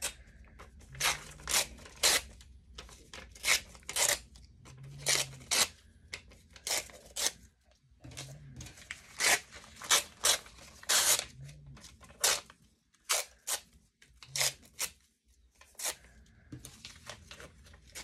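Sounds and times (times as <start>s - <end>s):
paper pages tearing: 0.8s - 5.8s, 8.7s - 15.0s.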